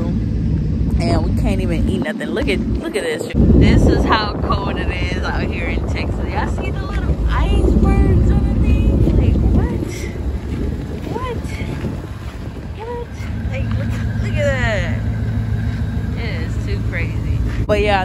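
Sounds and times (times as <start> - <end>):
steady low hum: 0.0 - 18.0
wind rumbling on microphone: 0.0 - 18.0.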